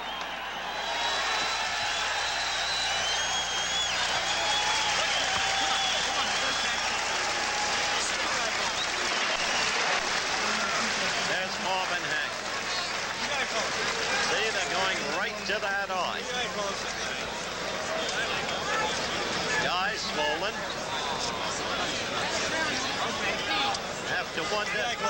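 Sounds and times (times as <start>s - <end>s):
arena crowd cheering and applauding: 0.0s - 25.0s.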